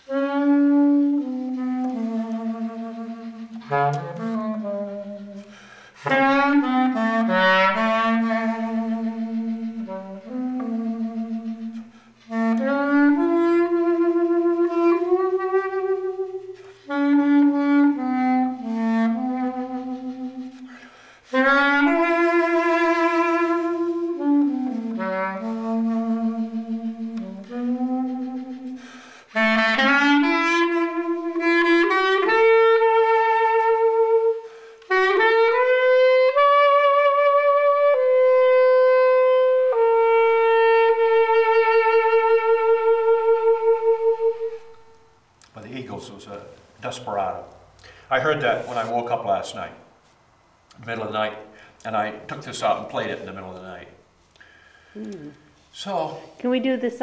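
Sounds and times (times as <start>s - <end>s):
solo clarinet melody: 0.0s - 45.9s.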